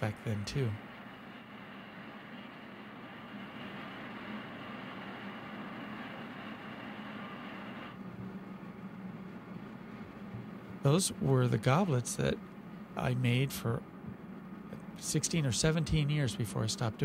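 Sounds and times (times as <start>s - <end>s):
high hiss: 0.0s - 8.0s
gas furnace roaring: 0.0s - 17.0s
low hum: 0.0s - 17.0s.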